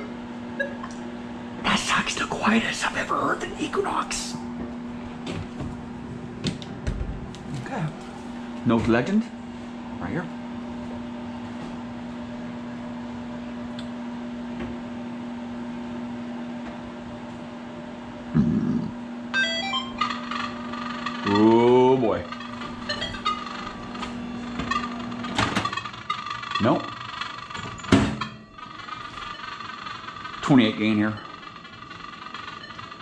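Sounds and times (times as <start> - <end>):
microwave oven humming: 0.0 - 33.0
metal detector rising beeps: 19.4 - 33.0
steady high threshold tone: 19.4 - 33.0.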